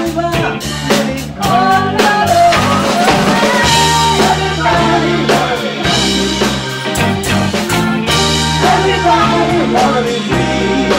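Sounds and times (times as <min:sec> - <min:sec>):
person singing: 0:00.0 - 0:07.2, 0:08.1 - 0:10.9
bass guitar: 0:00.0 - 0:10.9
drum kit: 0:00.0 - 0:10.9
electric guitars: 0:00.0 - 0:10.9.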